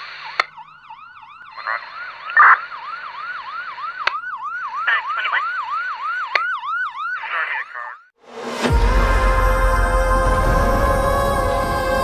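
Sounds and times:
emergency siren yelping: 0.1s - 8.1s
sharp hits: 8.2s - 12.0s.

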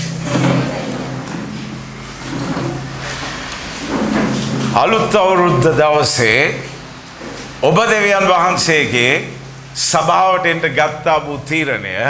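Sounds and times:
sustained keyboard pad chord: 0.0s - 12.0s.

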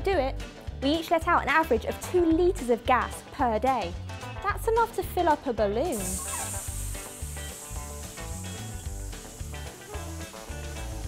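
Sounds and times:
background music with bass line: 0.0s - 11.0s
air hissing out of balloon: 5.9s - 11.0s.

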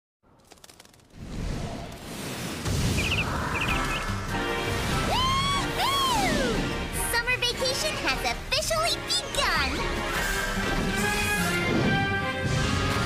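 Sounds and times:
cartoon birds chirping: 2.8s - 4.2s
cartoon music: 4.8s - 9.9s.

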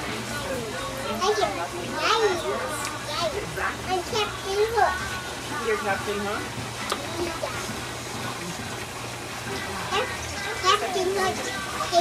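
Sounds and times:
children chattering and calling: 0.0s - 8.7s, 9.3s - 12.0s.

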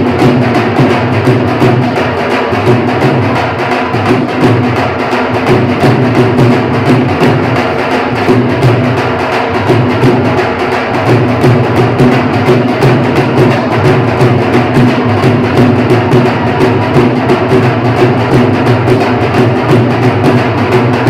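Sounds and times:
drums beaten with sticks: 0.0s - 21.0s.

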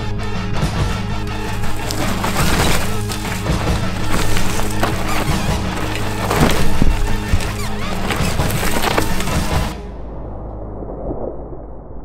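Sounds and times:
bike tyres crunching leaves: 1.3s - 9.8s.

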